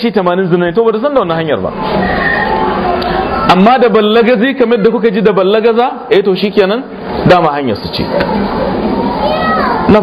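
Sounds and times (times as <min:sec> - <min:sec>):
audience chattering: 0:01.4 - 0:10.0
children's voices: 0:08.2 - 0:10.0.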